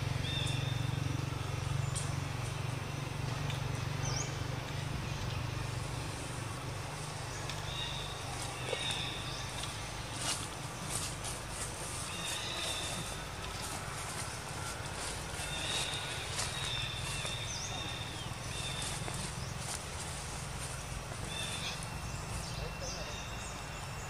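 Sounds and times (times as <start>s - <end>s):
steady low rumble: 0.0s - 23.8s.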